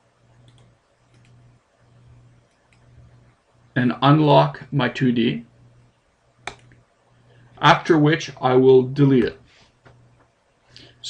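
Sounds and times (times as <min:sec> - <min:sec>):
faint low hum: 0:00.0 - 0:11.0
computer mouse clicks: 0:00.3 - 0:01.4, 0:02.4 - 0:03.0, 0:06.4 - 0:06.8
man's voice: 0:03.8 - 0:05.5, 0:07.6 - 0:09.4.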